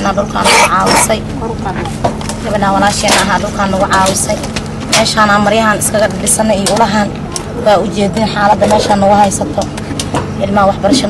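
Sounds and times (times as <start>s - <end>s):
woman speaking: 0.0s - 9.8s, 10.4s - 11.0s
steady low hum: 0.0s - 11.0s.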